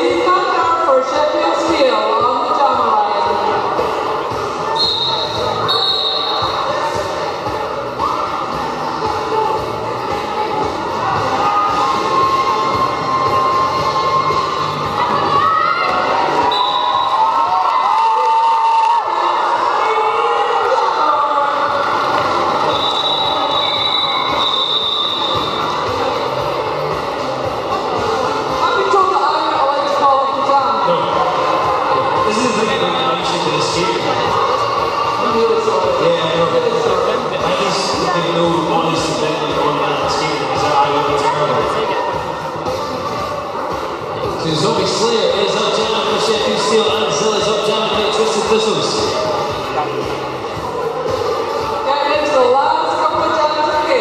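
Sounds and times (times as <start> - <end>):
echoing crowd noise: 0.0 - 54.0
short high whistle blasts: 4.8 - 6.4, 16.4 - 17.2, 22.7 - 25.6.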